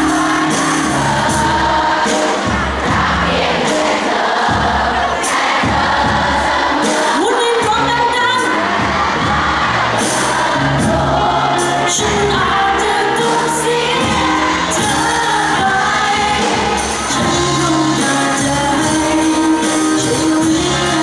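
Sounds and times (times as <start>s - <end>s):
drums: 0.0s - 21.0s
lead vocalist singing: 0.0s - 21.0s.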